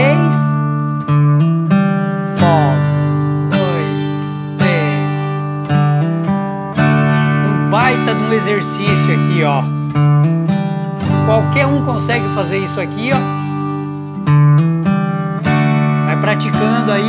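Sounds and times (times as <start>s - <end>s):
acoustic guitar strumming chords: 0.0s - 17.0s
guitar note fill: 0.0s - 17.0s.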